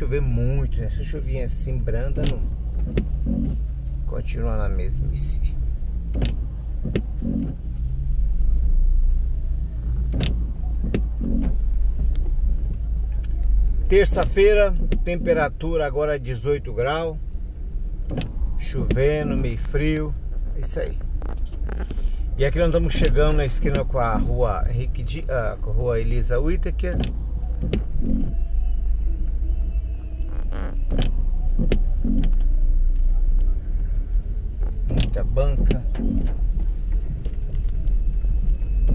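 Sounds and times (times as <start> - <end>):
low rumble: 17.1 - 38.9.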